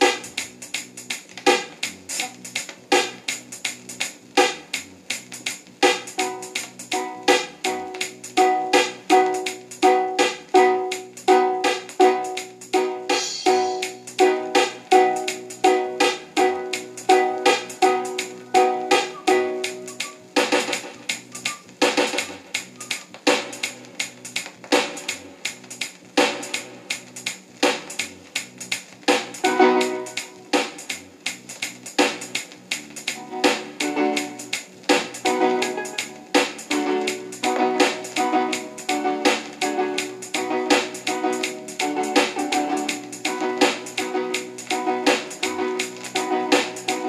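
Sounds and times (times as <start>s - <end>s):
reggae dub music from record player: 0.0s - 47.0s.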